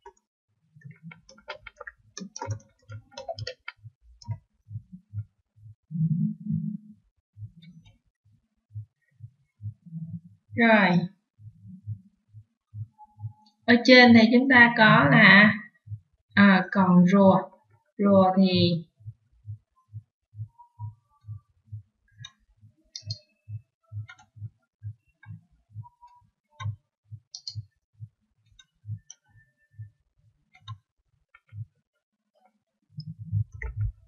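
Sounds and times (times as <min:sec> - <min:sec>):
keyboard keystroke clicks: 0:00.9 - 0:04.4
soft low thuds: 0:33.0 - 0:34.0.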